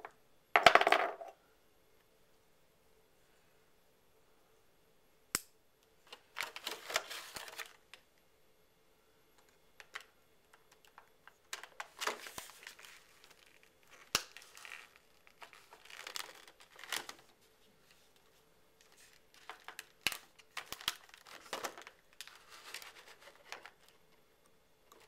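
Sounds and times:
plastic packaging crinkling: 6.1s - 7.8s, 11.6s - 17.3s, 18.8s - 24.1s.

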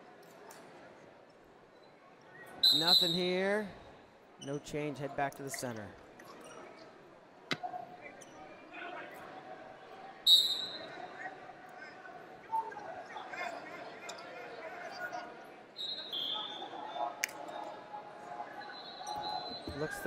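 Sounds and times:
background voices in a hall: 0.0s - 20.0s
shoes squeaking on a mat: 19.0s - 20.0s.

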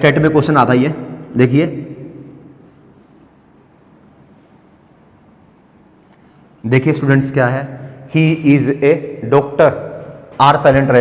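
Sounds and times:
marker pen writing on whiteboard: 1.2s - 7.4s.

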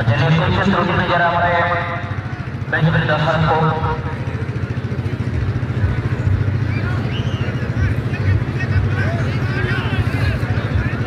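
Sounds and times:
man speaking: 0.0s - 2.1s, 2.7s - 4.1s
low mechanical drone: 0.0s - 11.0s.

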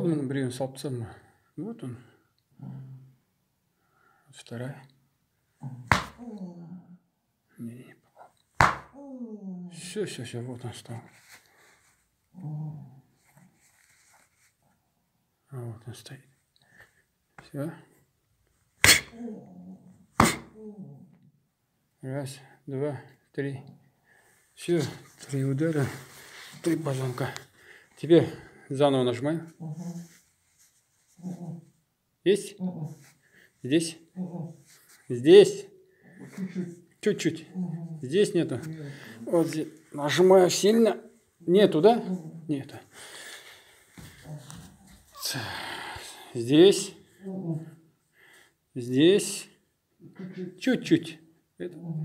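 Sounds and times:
faint low vocal sound: 1.9s - 3.2s, 5.6s - 8.0s, 9.0s - 10.0s, 12.3s - 13.6s, 19.0s - 21.4s, 31.1s - 31.8s, 33.9s - 35.0s, 36.0s - 39.8s, 44.0s - 46.4s, 47.0s - 47.9s
sharp blow on body: 5.9s - 6.2s, 8.6s - 8.9s, 18.8s - 19.1s, 20.2s - 20.5s
person groaning in pain: 45.1s - 46.4s.

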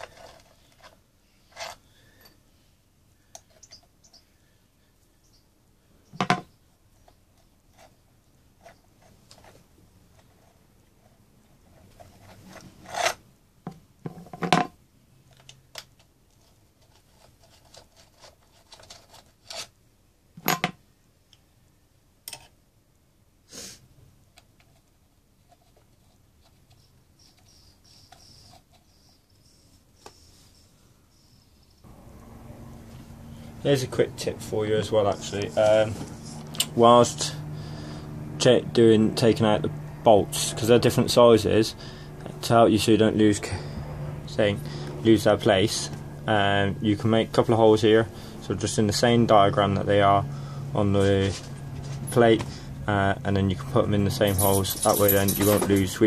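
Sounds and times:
metallic clicks of tool and bolts: 22.2s - 22.6s.

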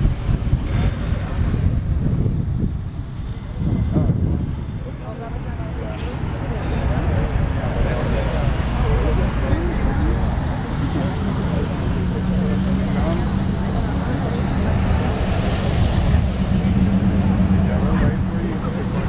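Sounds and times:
faint voices: 0.0s - 19.0s
large engine running: 0.0s - 19.0s.

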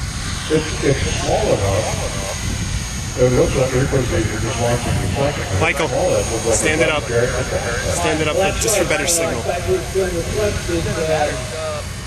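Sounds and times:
low rumble: 0.0s - 12.0s
speech: 0.5s - 2.4s, 3.2s - 11.9s.

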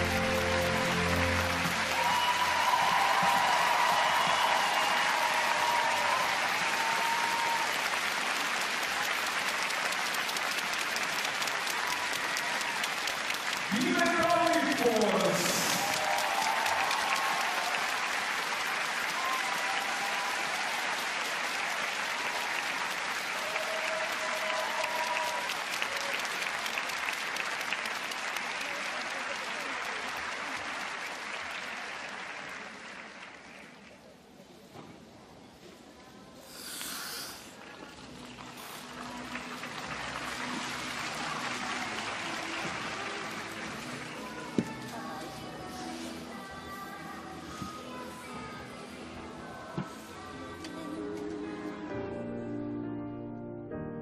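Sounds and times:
audience applauding: 0.0s - 34.1s, 36.6s - 46.5s.

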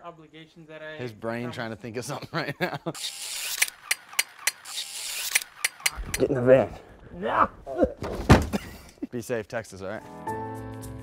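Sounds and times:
sharp mechanical clicks: 3.0s - 6.2s.

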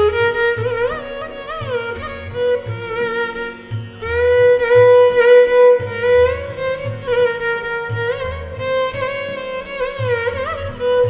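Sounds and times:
low accompaniment notes: 0.0s - 11.0s
violin playing slow melody: 0.0s - 11.0s.

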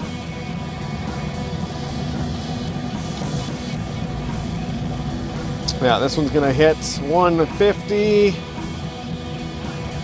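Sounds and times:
rock music with guitar and drums: 0.0s - 10.0s.

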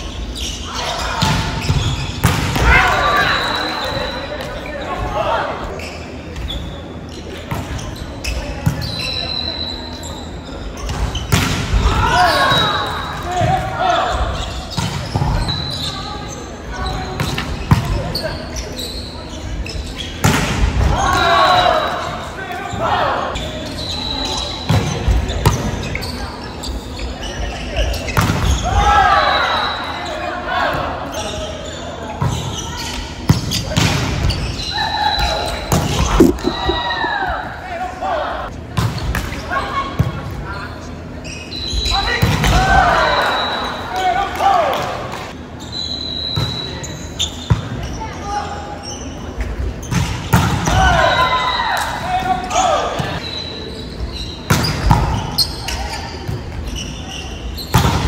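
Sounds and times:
players calling and shouting: 34.7s - 38.5s
hands smacking volleyball: 36.1s - 37.2s.

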